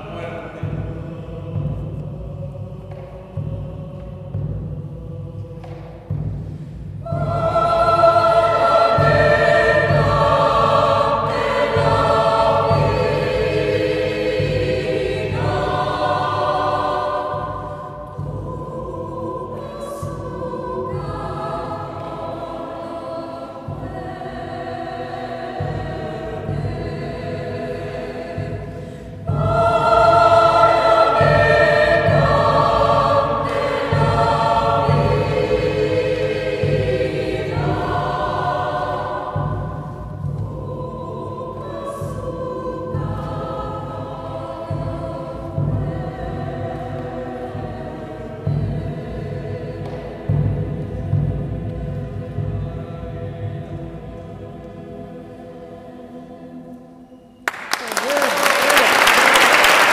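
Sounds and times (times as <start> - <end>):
mixed choir singing folk song: 0.0 - 59.9.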